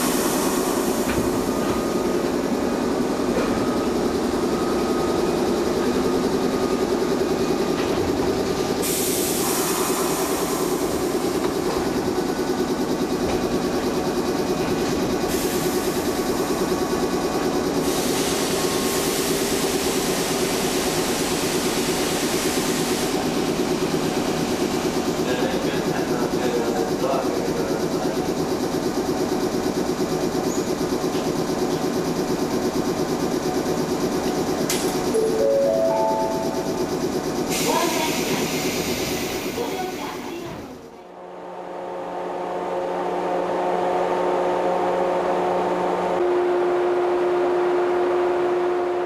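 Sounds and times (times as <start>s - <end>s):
train equipment humming: 31.1s - 41.0s.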